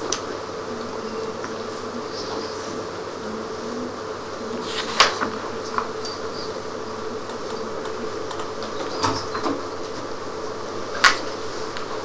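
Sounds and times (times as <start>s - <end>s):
steady hum: 0.0s - 12.0s.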